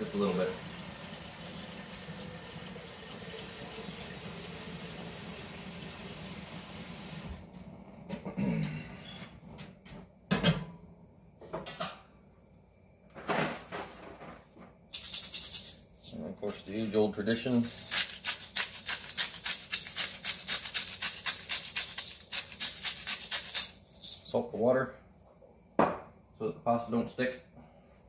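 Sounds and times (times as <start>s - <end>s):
tap water running into pot: 0.0s - 7.2s.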